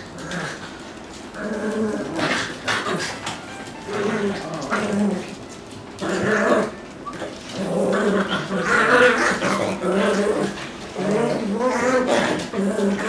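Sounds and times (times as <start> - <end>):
dogs growling: 0.0 - 13.0.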